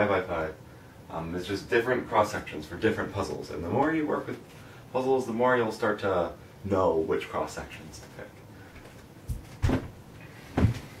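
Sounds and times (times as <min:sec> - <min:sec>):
dull thumps: 0:09.2 - 0:11.0.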